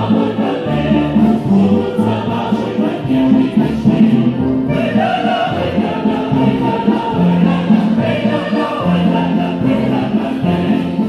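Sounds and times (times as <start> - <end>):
choir singing: 0.0 - 11.0
folk dance stage music: 0.0 - 11.0.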